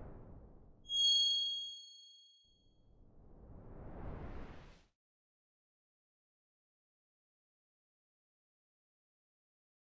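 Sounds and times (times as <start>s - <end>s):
bright metallic chime: 0.9s - 2.4s
soft whoosh: 3.2s - 4.8s.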